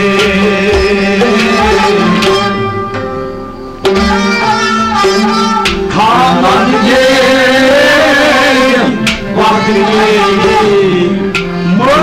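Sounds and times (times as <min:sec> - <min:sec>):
person singing folk song: 0:00.0 - 0:02.6, 0:05.8 - 0:12.0
instrumental accompaniment: 0:00.0 - 0:12.0.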